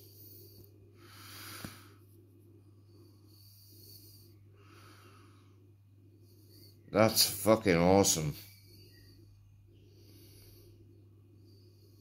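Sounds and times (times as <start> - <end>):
faint breathing: 0.0 - 7.4, 8.4 - 12.0
faint low hum: 0.0 - 12.0.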